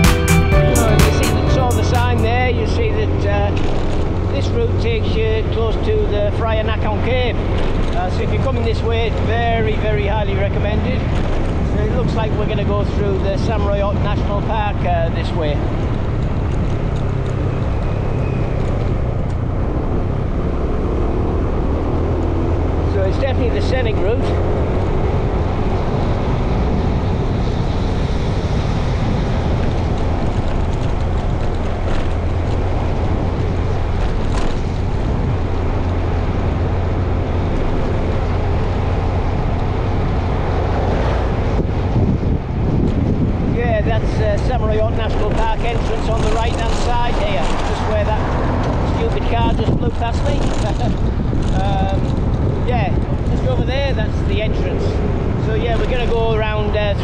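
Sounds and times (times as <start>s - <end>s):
road vehicle running: 0.0s - 57.0s
wind buffeting microphone: 1.6s - 57.0s.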